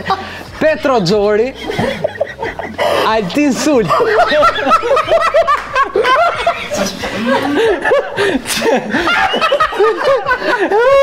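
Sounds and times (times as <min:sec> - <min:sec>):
men laughing together: 0:01.4 - 0:11.0.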